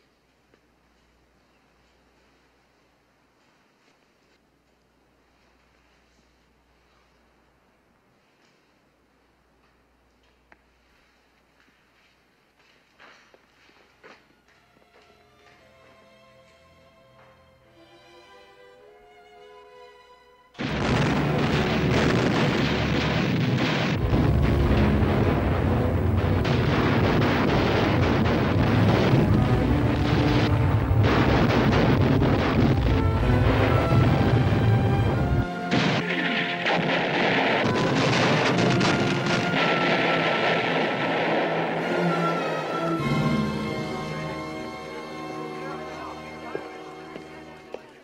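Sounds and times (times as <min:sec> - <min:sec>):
explosions and artillery fire: 0:20.6 - 0:45.1.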